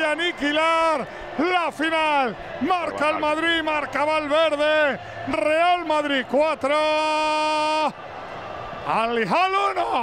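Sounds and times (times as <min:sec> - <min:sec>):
man shouting commentary: 0:00.0 - 0:07.6.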